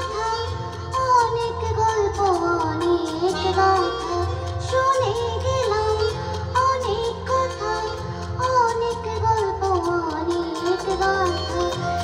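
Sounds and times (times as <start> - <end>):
instrumental accompaniment: 0.0 - 12.0.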